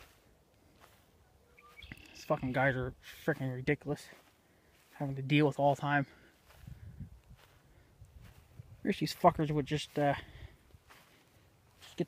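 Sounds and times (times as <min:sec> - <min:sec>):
faint bird chirps: 0:01.2 - 0:02.5.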